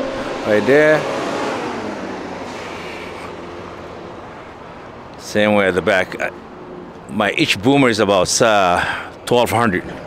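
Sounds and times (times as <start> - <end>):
passing vehicle rushing: 0.0 - 8.8.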